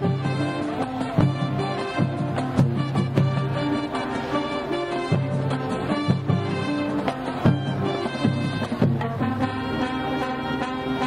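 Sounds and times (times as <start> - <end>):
brass holding chords: 0.0 - 11.0.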